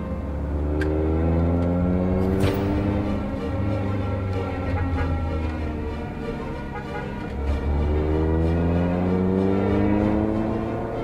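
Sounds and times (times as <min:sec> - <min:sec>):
vehicle engine accelerating: 0:00.0 - 0:11.0.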